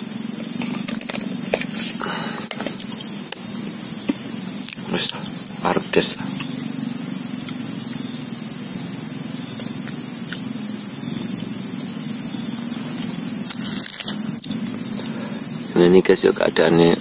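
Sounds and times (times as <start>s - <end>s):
high-pitched insect chorus: 0.0s - 17.0s.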